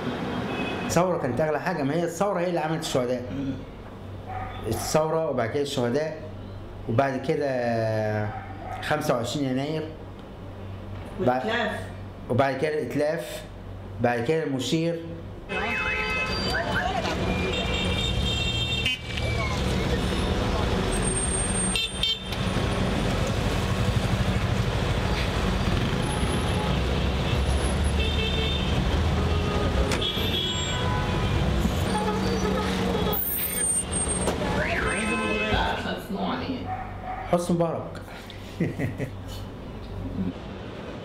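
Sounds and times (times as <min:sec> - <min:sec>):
traffic noise: 0:00.0 - 0:41.0
car horns tooting: 0:15.5 - 0:22.5, 0:25.8 - 0:36.0
voices of people: 0:16.3 - 0:18.0, 0:33.2 - 0:36.8.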